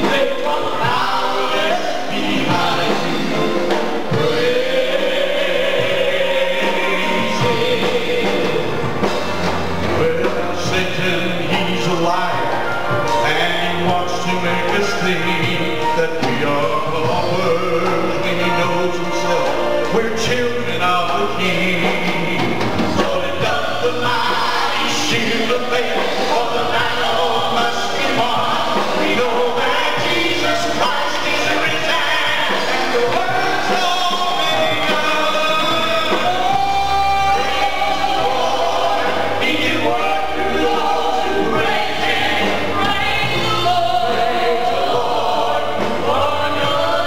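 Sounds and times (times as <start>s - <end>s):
band with electric bass: 0.0s - 47.0s
choir singing gospel: 0.0s - 47.0s
drums: 0.0s - 47.0s.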